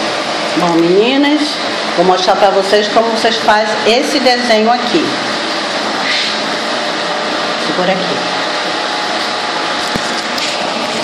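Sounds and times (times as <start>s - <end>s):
steady rushing fan noise: 0.0s - 11.0s.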